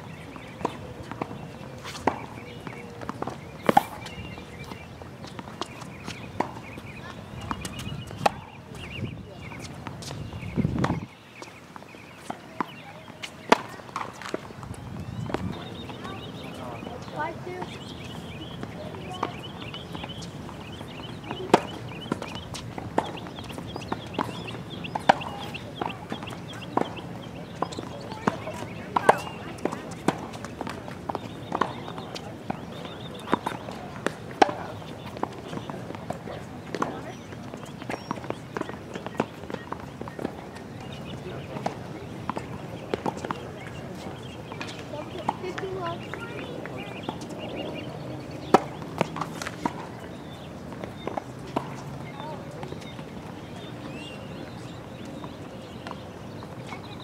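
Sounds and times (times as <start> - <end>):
tennis balls bouncing on court: 0.0 - 57.0
tennis balls struck by rackets: 0.2 - 56.9.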